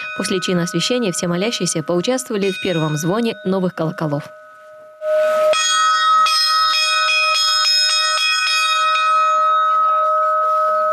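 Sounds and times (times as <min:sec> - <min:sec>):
church bell ringing: 0:00.0 - 0:10.9.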